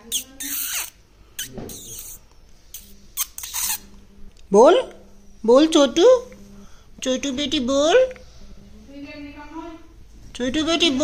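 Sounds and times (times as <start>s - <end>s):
parakeet squeaking: 0.0s - 3.9s.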